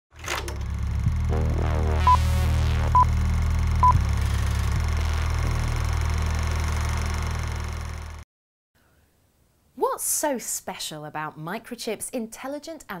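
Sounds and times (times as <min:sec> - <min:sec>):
steady low drone: 0:00.3 - 0:08.2.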